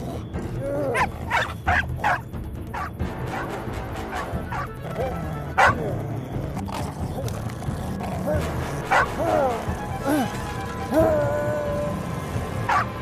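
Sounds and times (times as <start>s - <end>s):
dog barking and yelping: 0.0s - 9.7s, 12.6s - 13.0s
background music: 0.0s - 13.0s.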